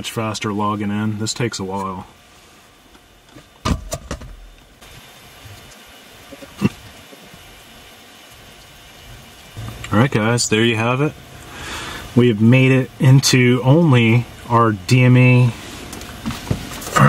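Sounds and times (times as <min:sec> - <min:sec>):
background hiss: 0:00.0 - 0:17.0.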